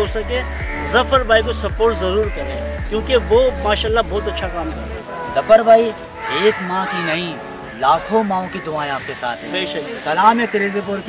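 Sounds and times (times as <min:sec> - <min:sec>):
music with thudding bass beat: 0:00.0 - 0:04.8
person's voice: 0:00.0 - 0:11.0.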